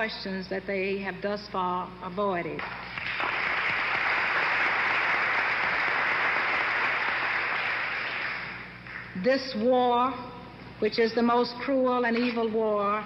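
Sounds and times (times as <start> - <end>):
audience applause: 2.9 - 9.1.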